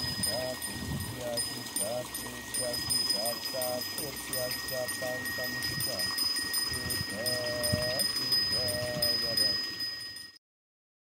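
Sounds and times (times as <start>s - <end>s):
person chanting a prayer: 0.0s - 9.6s.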